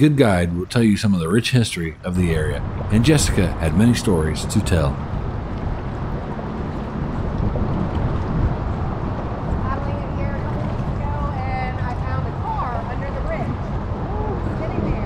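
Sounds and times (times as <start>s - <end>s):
wind rumble on microphone: 1.9s - 15.0s.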